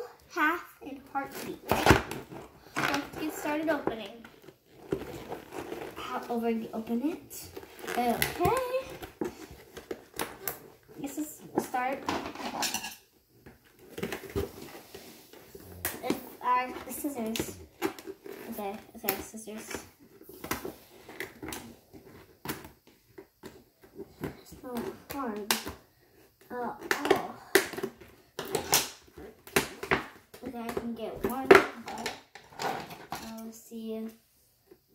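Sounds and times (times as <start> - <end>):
plastic crinkling: 1.2 - 12.4
plastic packaging rustling: 1.2 - 12.7, 13.5 - 24.4.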